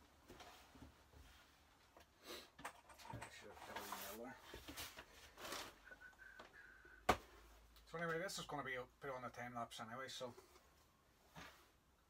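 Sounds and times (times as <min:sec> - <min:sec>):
faint rustling and handling: 0:03.0 - 0:06.5.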